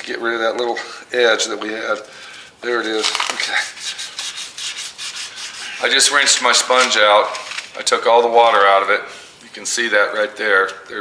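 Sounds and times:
hand rubbing wet metal: 2.7s - 9.3s.

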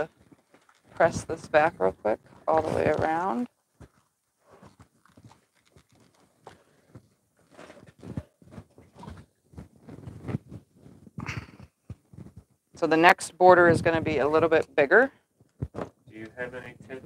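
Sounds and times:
fabric rustling: 0.0s - 12.6s.

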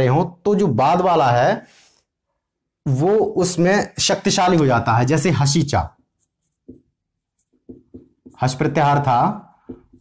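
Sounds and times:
marker writing on whiteboard: 5.9s - 10.0s.

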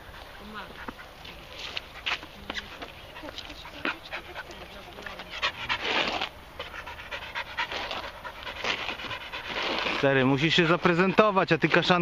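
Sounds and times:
dog panting: 0.0s - 11.6s.

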